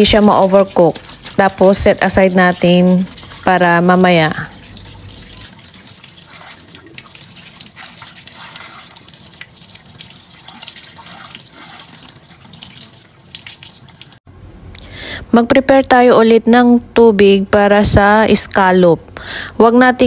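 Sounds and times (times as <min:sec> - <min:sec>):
tap water splashing into colander: 0:00.0 - 0:14.2.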